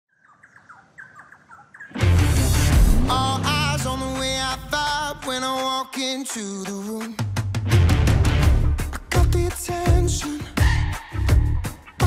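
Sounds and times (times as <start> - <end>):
songbird chirping: 0.1 - 4.7.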